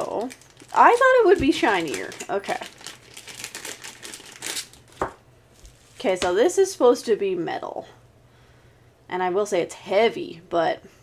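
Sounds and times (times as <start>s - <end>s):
plastic bag crinkling: 0.0s - 6.3s.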